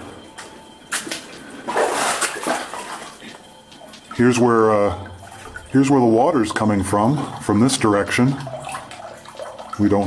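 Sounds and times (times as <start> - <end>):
boots splashing through shallow water: 0.9 - 3.4.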